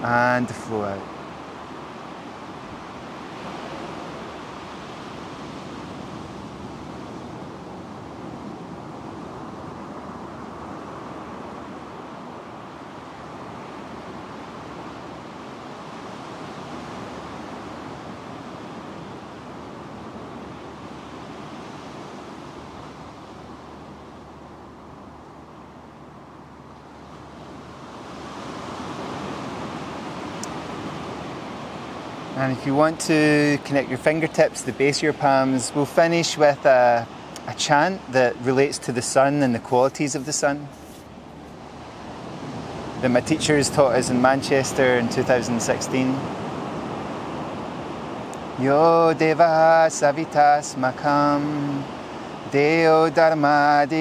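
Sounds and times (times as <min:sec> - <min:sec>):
ocean surf on beach: 0:00.0 - 0:54.0.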